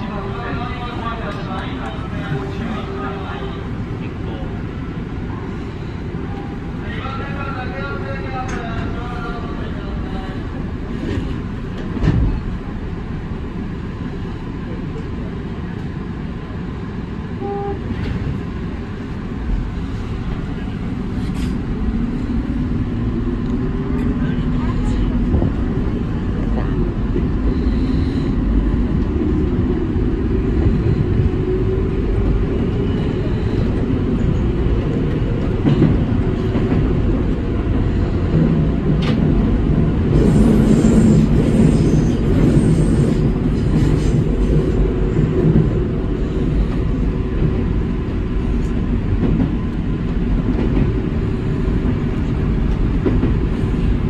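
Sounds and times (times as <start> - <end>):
wheels rumbling on rails: 7.9 - 54.0.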